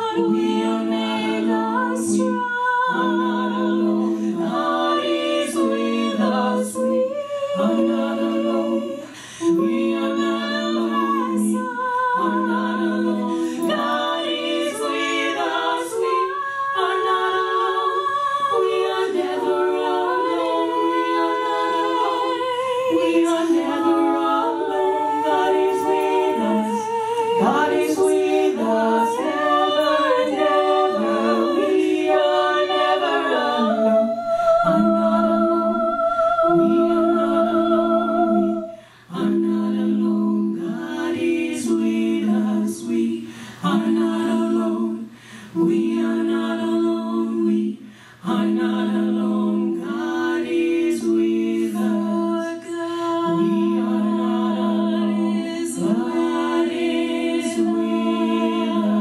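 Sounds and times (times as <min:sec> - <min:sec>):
women singing in close harmony: 0:00.0 - 0:59.0.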